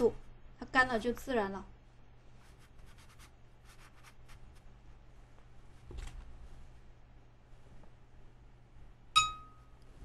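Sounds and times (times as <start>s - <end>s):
brush strokes on paper: 2.2s - 4.8s.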